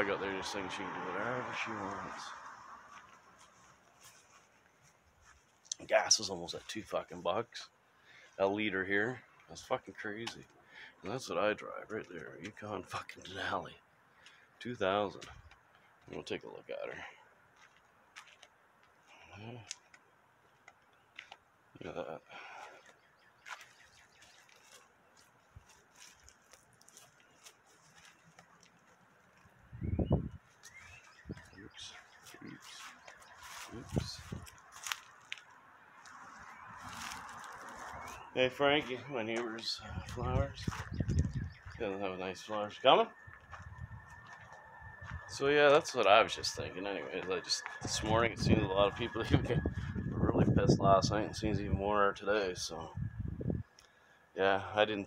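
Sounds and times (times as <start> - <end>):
man speaking: 0.0 - 2.4, 5.7 - 7.7, 8.4 - 13.8, 14.6 - 15.4, 16.1 - 17.2, 19.2 - 19.7, 21.8 - 22.5, 31.6 - 33.0, 33.6 - 34.4, 38.3 - 40.8, 41.7 - 43.2, 45.3 - 53.0, 54.4 - 55.0
footsteps on grass: 1.6 - 7.3, 17.5 - 19.2, 22.4 - 29.7, 30.4 - 41.9, 43.2 - 45.9
faint bird chirps: 29.6 - 34.4, 37.8 - 50.0.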